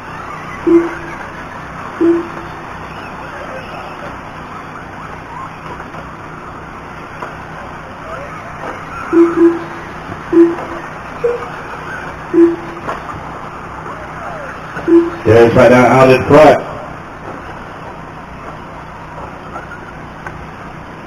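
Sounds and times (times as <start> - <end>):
track noise: 0.0 - 21.0
short loud beeps: 0.6 - 1.2, 2.0 - 3.9, 9.0 - 11.7, 12.3 - 12.9, 14.8 - 15.8.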